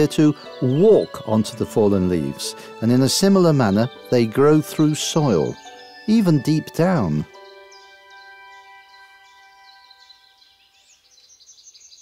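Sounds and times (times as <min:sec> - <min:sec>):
held music chord: 0:00.0 - 0:10.6
small birds chirping: 0:00.0 - 0:12.0.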